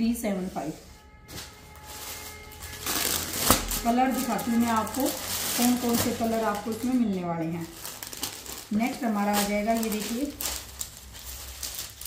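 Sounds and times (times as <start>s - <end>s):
plastic packaging rustling: 0.5s - 12.0s.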